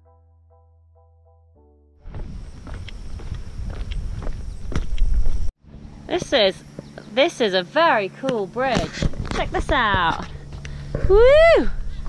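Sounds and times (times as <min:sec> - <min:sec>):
footsteps on wooden boardwalk: 0:02.1 - 0:05.5, 0:06.1 - 0:07.1, 0:08.2 - 0:11.2
low rumble: 0:02.1 - 0:07.2, 0:08.6 - 0:12.0.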